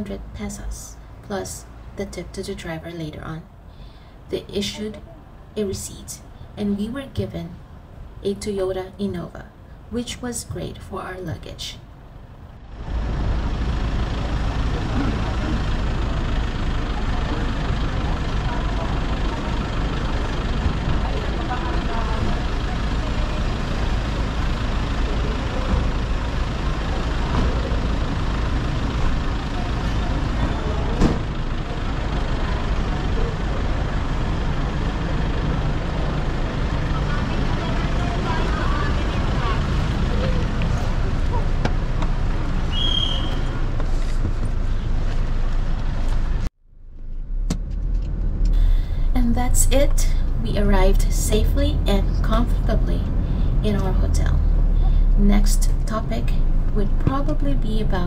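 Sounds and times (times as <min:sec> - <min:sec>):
people talking: 0:00.0 - 0:03.5, 0:04.3 - 0:07.6, 0:08.2 - 0:11.8, 0:14.8 - 0:15.6, 0:20.9 - 0:23.7, 0:36.9 - 0:41.6, 0:48.6 - 0:54.5, 0:55.2 - 0:58.0
vehicles idling and passing: 0:00.0 - 0:58.0.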